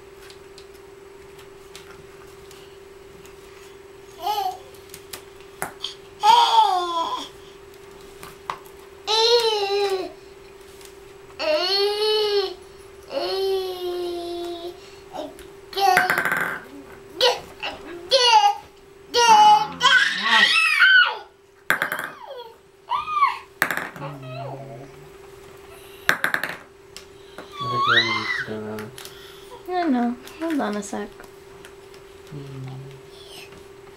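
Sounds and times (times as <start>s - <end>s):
steady hum: 0.0s - 33.9s
toys knocking: 15.9s - 16.7s, 21.7s - 22.2s, 23.6s - 24.1s, 26.1s - 26.7s
baby babbling and squealing: 22.2s - 24.6s, 27.5s - 28.5s.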